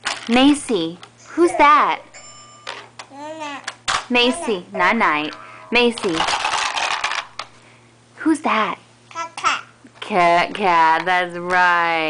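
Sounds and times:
plastic toy pieces rattling: 6.0s - 7.5s.

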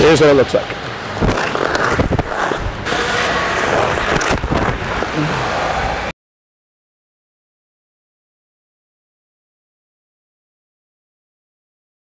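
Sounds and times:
skate blades scraping ice: 1.1s - 6.1s
skate blades gliding hiss: 1.3s - 5.8s.

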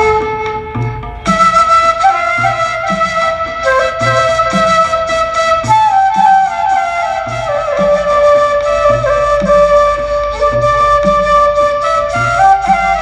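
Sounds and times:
bamboo flute melody: 0.0s - 13.0s
low steady beat: 0.0s - 13.0s.

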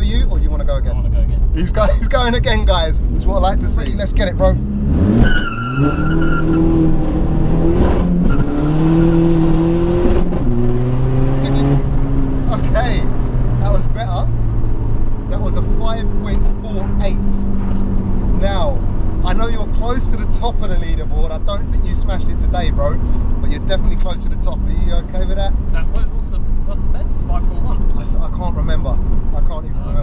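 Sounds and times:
diesel engine accelerating: 0.6s - 30.0s.

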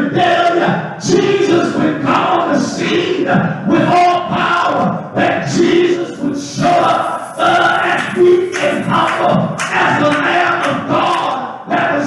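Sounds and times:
congregation shouting and singing: 0.0s - 12.0s.

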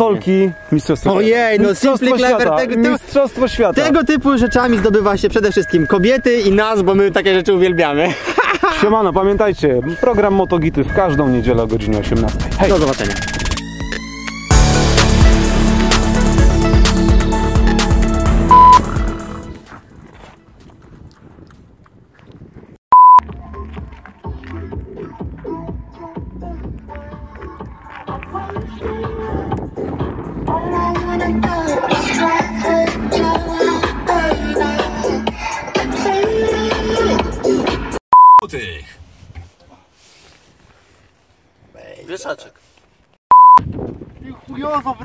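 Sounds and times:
electronic music: 8.8s - 19.6s
loud pure beep tone: 18.5s - 18.9s, 22.9s - 23.2s, 38.1s - 38.4s, 43.3s - 43.6s.

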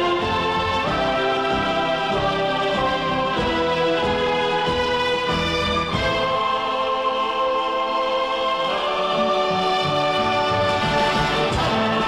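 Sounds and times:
orchestral chords with choir: 0.0s - 12.0s.

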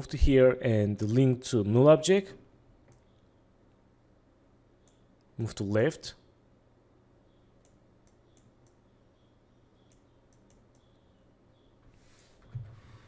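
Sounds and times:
computer mouse clicking: 9.8s - 11.0s.

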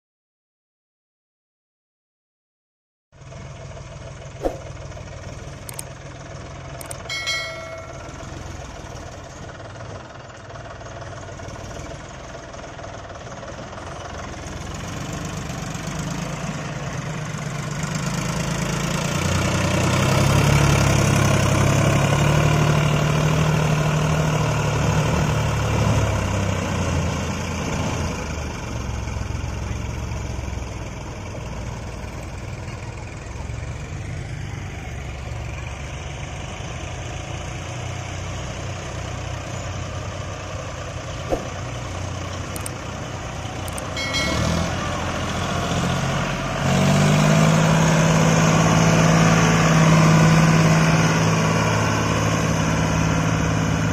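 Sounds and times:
combine harvester engine running: 3.2s - 53.9s.

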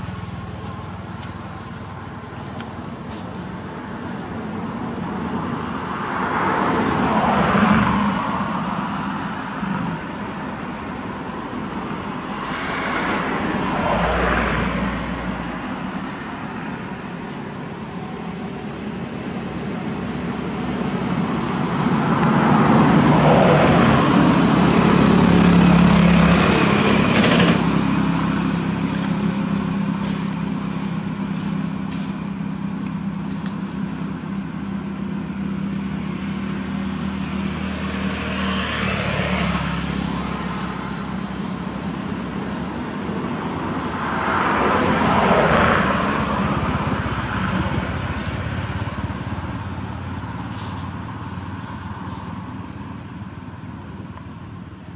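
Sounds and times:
vehicle engine passing: 0.0s - 53.8s
traffic noise: 0.0s - 54.9s.

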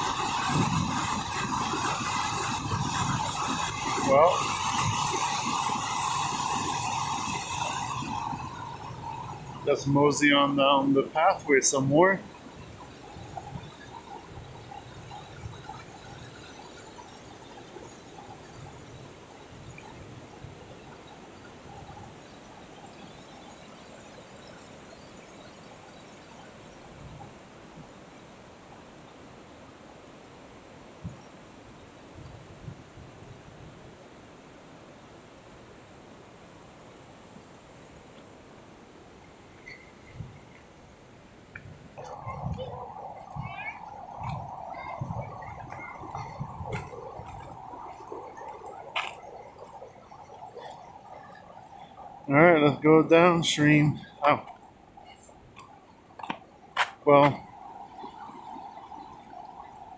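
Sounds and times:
river rapids rushing: 0.0s - 24.8s, 41.2s - 59.9s
soft footsteps on trail: 43.2s - 51.6s, 54.0s - 57.4s.

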